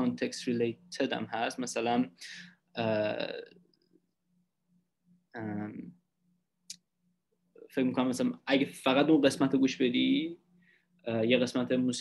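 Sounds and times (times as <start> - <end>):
person talking over video call: 0.0 - 4.1, 5.2 - 12.0.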